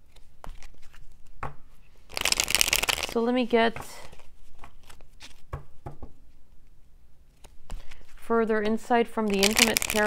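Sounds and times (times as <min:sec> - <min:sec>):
cards clicking and tapping: 0:09.3 - 0:10.0.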